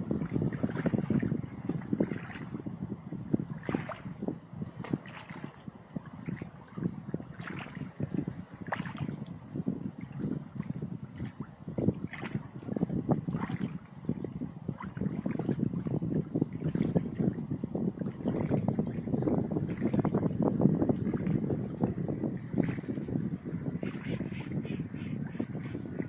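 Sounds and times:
small waves lapping: 0.0s - 2.6s, 3.4s - 26.0s
wind buffeting microphone: 0.0s - 26.0s.

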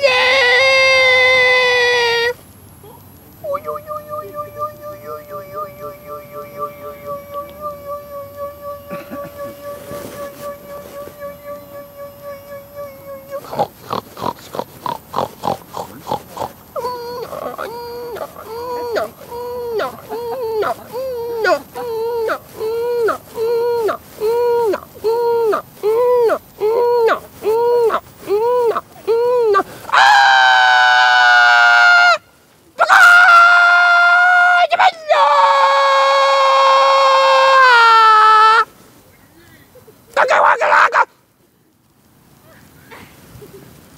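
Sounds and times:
loud high-pitched scream: 0.0s - 2.4s, 25.5s - 32.2s, 32.8s - 38.7s
pig grunts: 13.4s - 16.6s, 17.2s - 20.9s.

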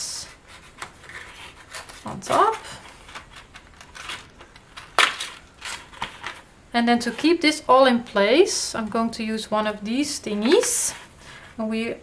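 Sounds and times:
paper rustling: 0.2s - 7.2s.

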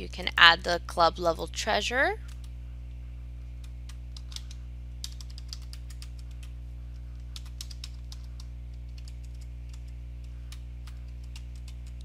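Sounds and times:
steady low hum: 0.0s - 12.0s
keyboard typing: 3.6s - 6.6s, 7.2s - 12.0s.

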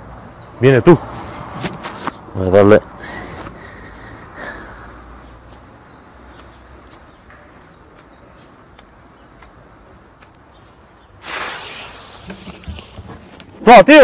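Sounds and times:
loud hiss: 11.2s - 13.2s.

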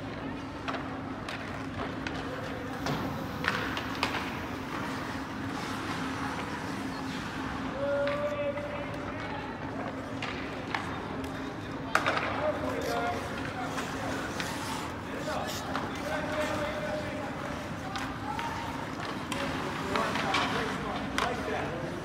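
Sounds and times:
hockey sticks and puck clacking: 0.1s - 6.5s, 7.9s - 22.0s.

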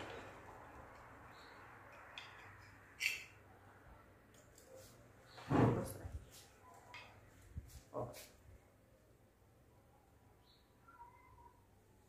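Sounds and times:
cutlery clinking on plate: 2.0s - 3.4s.

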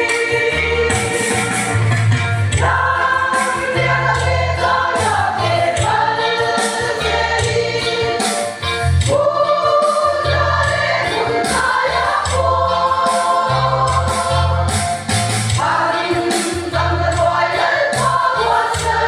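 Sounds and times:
women's choir singing a hymn: 0.0s - 1.5s, 2.6s - 14.7s, 15.6s - 19.0s.

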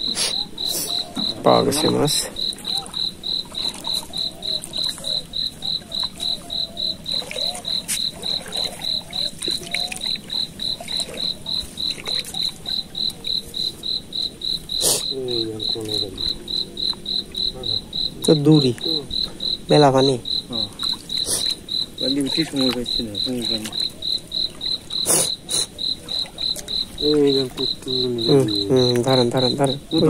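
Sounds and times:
cricket chirping: 0.0s - 30.0s.

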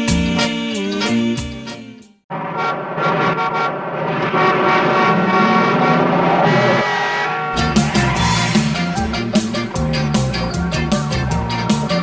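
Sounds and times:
layered engine tones: 2.3s - 12.0s.

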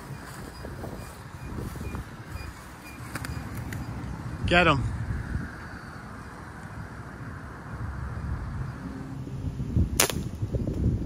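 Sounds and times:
air rifle shot: 10.0s - 10.4s.

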